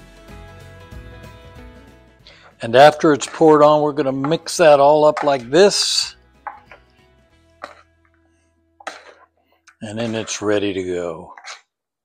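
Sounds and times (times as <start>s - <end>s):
faint background music: 2.2s - 11.5s
spoons scraping salad in bowl: 2.9s - 5.6s, 7.6s - 7.9s, 8.8s - 9.3s, 9.9s - 11.6s.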